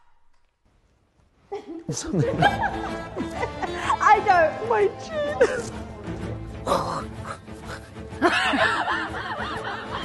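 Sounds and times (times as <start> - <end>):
woman laughing: 1.5 - 4.2, 5.0 - 5.8, 8.2 - 10.0.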